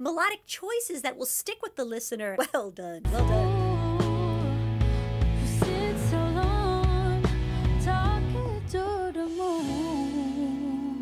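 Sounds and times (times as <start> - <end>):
woman singing slow melody: 3.1 - 11.0.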